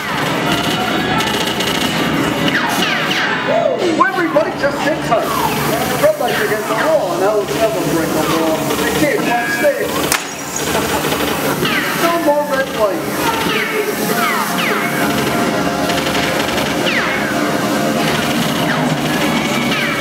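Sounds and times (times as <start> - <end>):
voices: 2.4 - 20.0
background music: 13.2 - 20.0.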